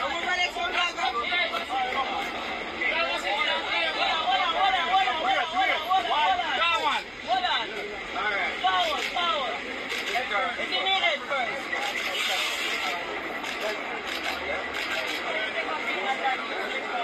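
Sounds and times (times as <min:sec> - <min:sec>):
crowd talking and calling out: 0:00.0 - 0:17.0
outdoor background noise: 0:00.0 - 0:17.0.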